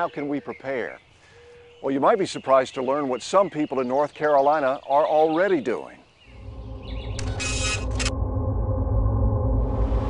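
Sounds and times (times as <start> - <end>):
low rumble: 6.3 - 10.0.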